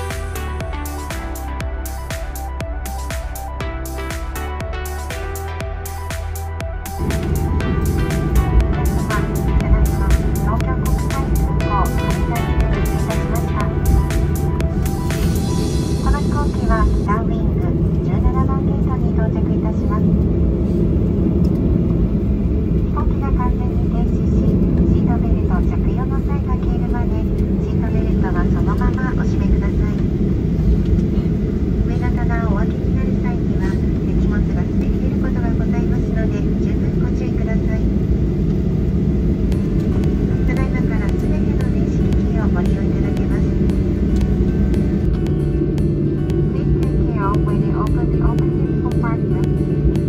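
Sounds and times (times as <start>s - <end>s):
airliner cabin rumble: 6.7s - 50.0s.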